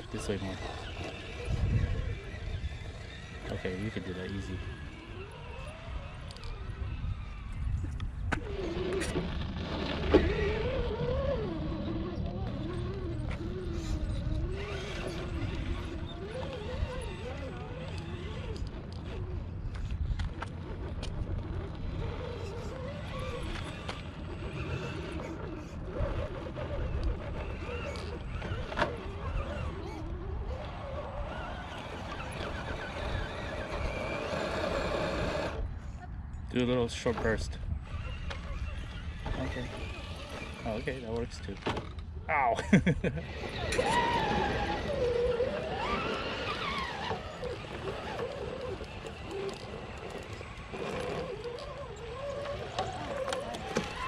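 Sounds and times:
wind rumble on microphone: 0.0 - 42.3
electric motor and gears whining: 0.0 - 54.0.

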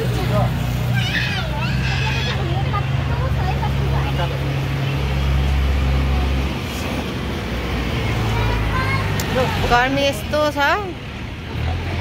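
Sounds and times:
people talking: 0.0 - 4.6, 8.2 - 12.0.

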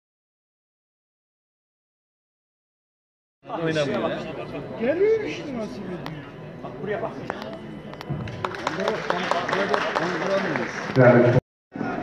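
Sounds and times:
music: 7.0 - 10.3.

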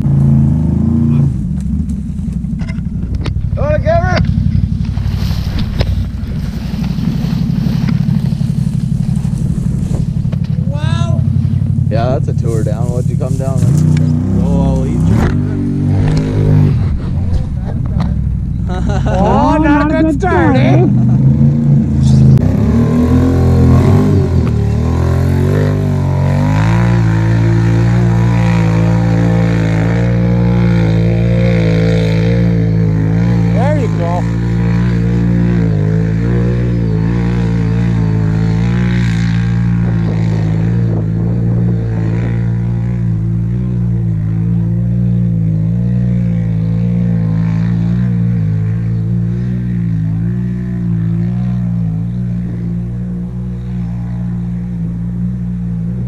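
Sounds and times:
atv engine revving: 0.0 - 56.0.

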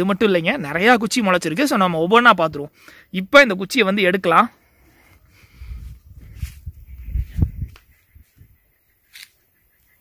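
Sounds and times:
stick pulled out of soil: 9.0 - 9.4.

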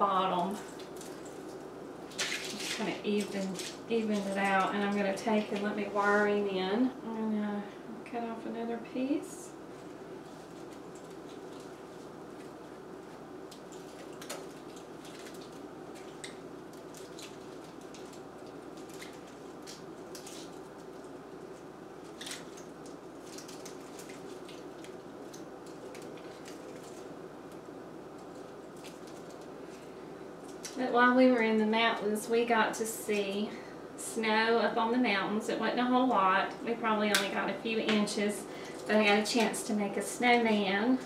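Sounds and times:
low room hum: 0.0 - 41.0
wire clicking and rustling: 0.5 - 6.3, 9.7 - 30.9.

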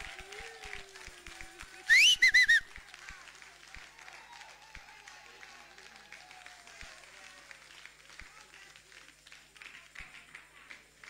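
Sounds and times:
loud whistle notes: 1.9 - 2.7.

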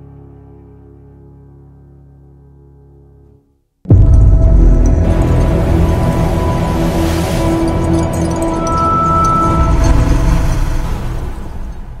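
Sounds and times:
musical tones: 3.9 - 11.0
low cinematic rumble: 3.9 - 12.0.

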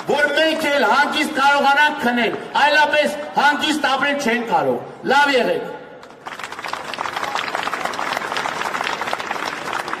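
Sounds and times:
crowd applauding: 6.0 - 10.0.

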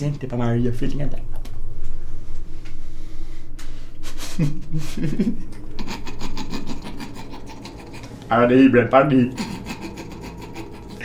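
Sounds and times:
fast rasping rattle: 5.8 - 8.3, 9.3 - 11.0.

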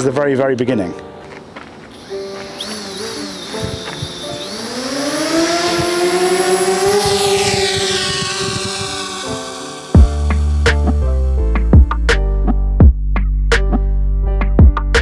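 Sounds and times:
background music: 0.0 - 15.0
drone motors whining: 1.9 - 12.1.

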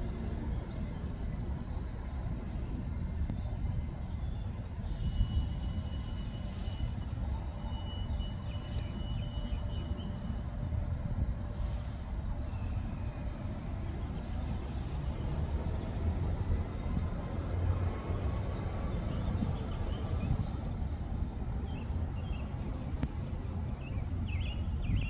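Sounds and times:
low outdoor rumble: 0.0 - 25.0.

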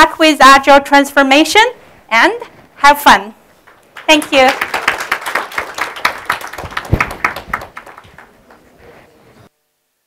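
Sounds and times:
audience applauding: 3.7 - 8.8.

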